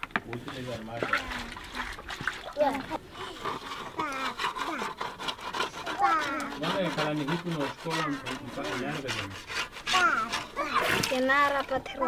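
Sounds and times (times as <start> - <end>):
pot being scrubbed: 0.4 - 12.0.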